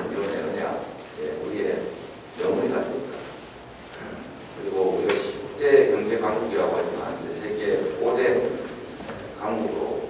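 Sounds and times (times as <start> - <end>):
man speaking into a microphone: 0.0 - 3.4, 4.0 - 10.0.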